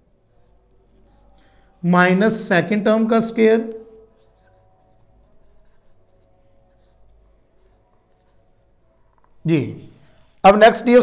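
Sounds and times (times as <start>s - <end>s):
marker pen writing on whiteboard: 0.0s - 9.4s.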